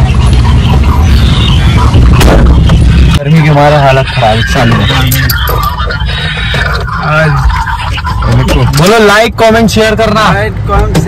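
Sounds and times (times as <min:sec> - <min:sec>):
vehicle cabin rumble: 0:00.0 - 0:11.0
man talking: 0:03.2 - 0:05.5.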